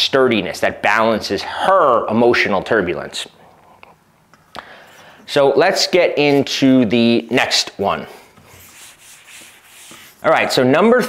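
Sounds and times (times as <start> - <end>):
eraser rubbing on whiteboard: 8.4 - 10.6.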